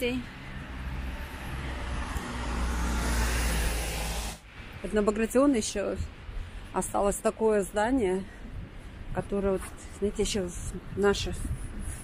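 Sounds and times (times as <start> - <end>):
tyres hissing on wet road: 1.4 - 4.5.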